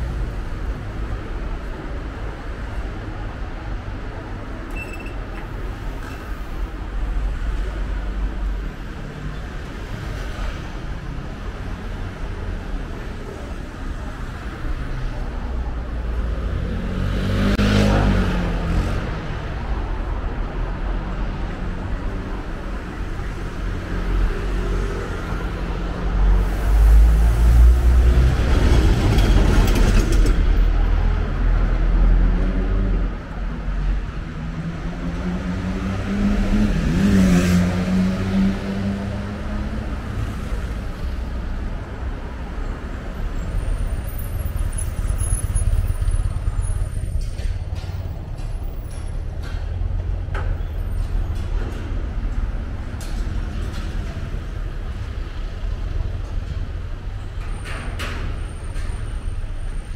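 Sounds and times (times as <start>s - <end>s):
low rumble of traffic: 0.0s - 59.9s
cars driving past: 5.4s - 59.9s.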